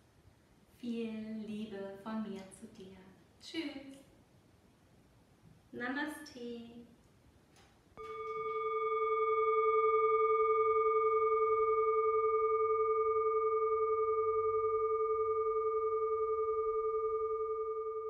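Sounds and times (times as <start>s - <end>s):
singing bowl ringing: 8.0s - 18.0s.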